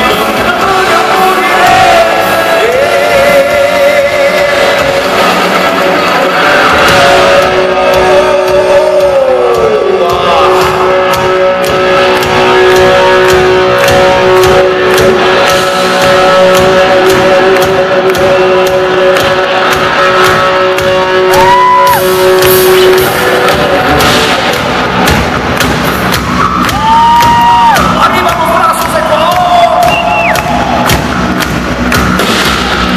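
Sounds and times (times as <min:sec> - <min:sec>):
bass guitar: 0:00.0 - 0:32.9
distorted electric guitars: 0:00.0 - 0:32.9
drums: 0:00.0 - 0:32.9
held bending high note: 0:10.3 - 0:24.6.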